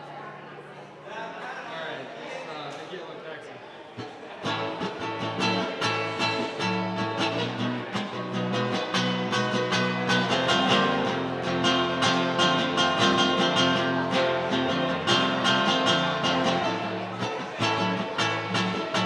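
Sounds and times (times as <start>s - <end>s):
acoustic guitar strumming: 4.0s - 19.0s.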